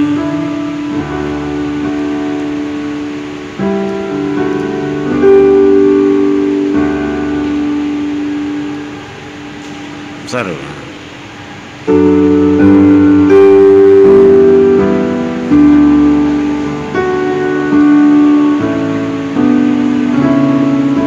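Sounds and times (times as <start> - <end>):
electronic keyboard chords: 0.0 - 21.0.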